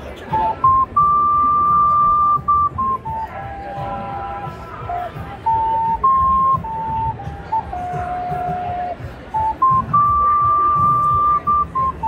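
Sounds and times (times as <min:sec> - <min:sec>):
faint crowd noise: 0:00.0 - 0:12.0
high pure-toned melody: 0:00.3 - 0:12.0.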